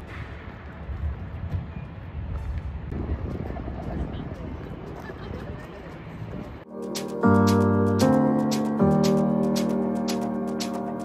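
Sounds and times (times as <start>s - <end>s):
wind buffeting microphone: 0.0s - 6.7s.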